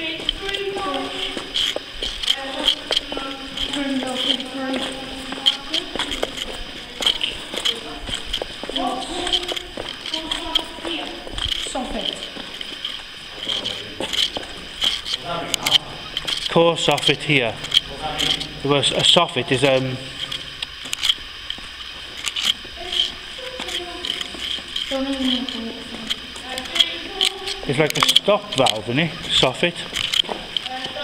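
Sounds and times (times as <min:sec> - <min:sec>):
footsteps on rubble: 0:00.0 - 0:31.0
indistinct voices talking: 0:00.0 - 0:31.0
scattered clicks: 0:00.0 - 0:31.0.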